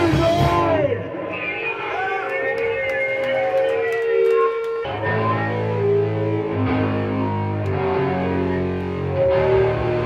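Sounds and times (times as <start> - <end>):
punk band distorted chord: 0.0 - 1.1, 5.1 - 10.0
electric guitar feedback: 0.0 - 10.0.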